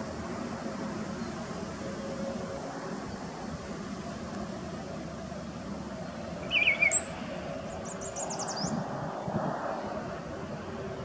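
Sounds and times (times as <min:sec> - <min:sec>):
bird gurgling and whistling: 0:06.5 - 0:07.3.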